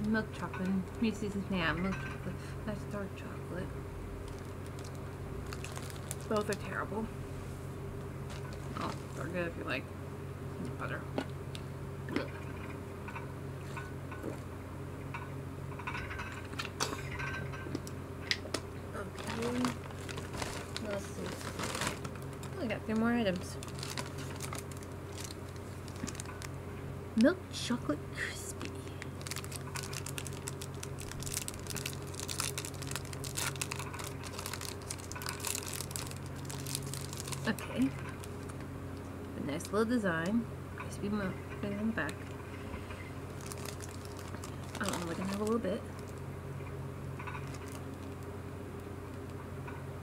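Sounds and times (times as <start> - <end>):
low electrical hum: 0.0 - 50.0
wrapper crinkling: 4.2 - 6.9, 8.2 - 9.3, 19.0 - 26.6, 28.6 - 38.6, 43.1 - 46.2, 47.2 - 48.3.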